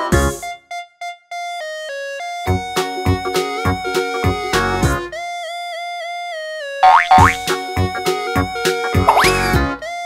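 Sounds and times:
playful background music: 0:02.2 - 0:10.0
cartoon boing: 0:06.8 - 0:07.4, 0:09.1 - 0:09.5.

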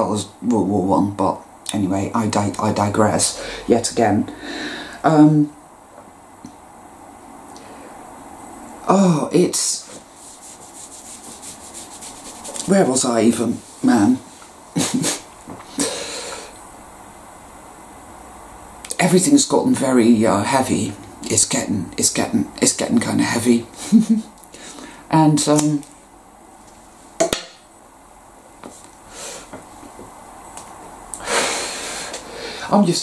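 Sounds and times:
fingers rubbing through hair: 0:09.8 - 0:15.2.

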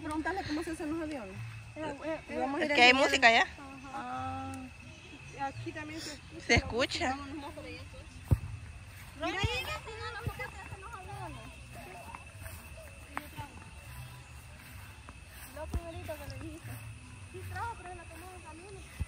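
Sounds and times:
voices talking: 0:00.0 - 0:19.0.

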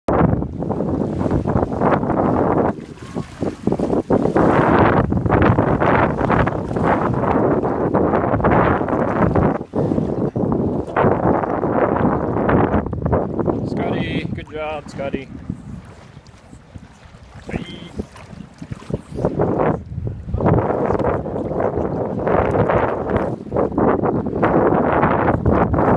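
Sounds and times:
wind buffeting microphone: 0:00.1 - 0:25.9
feet wading through shallow water: 0:00.3 - 0:25.9.

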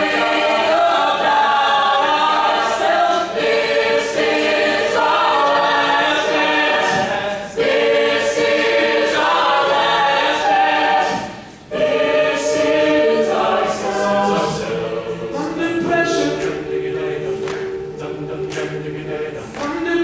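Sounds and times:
a cappella group singing chords: 0:00.0 - 0:20.0.

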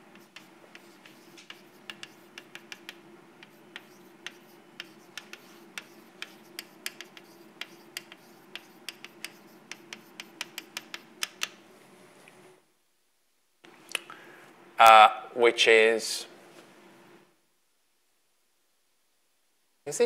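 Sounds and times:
chalk tapping and scratching blackboard: 0:00.0 - 0:11.6.

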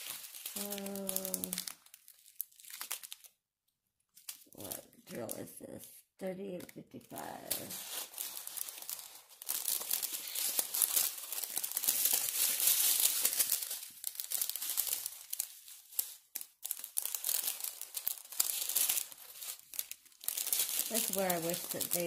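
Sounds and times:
plastic bags crinkling: 0:00.0 - 0:03.4, 0:04.1 - 0:22.0.

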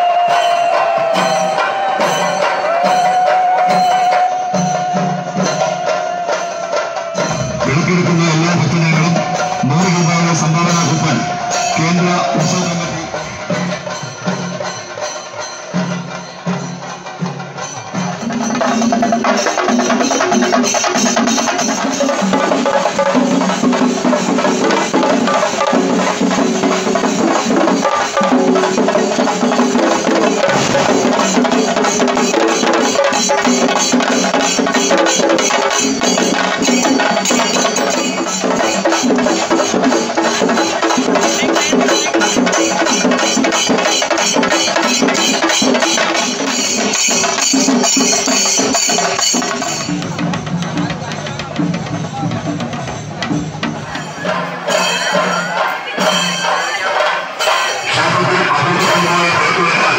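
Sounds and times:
fast percussion music: 0:00.0 - 0:59.9
clashing hand cymbals: 0:00.3 - 0:59.9.

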